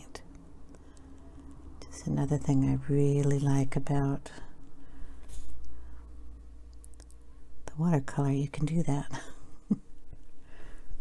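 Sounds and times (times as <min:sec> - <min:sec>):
woman speaking: 0:01.8 - 0:04.5, 0:07.6 - 0:09.4
faint breath: 0:04.4 - 0:06.2, 0:10.4 - 0:11.0.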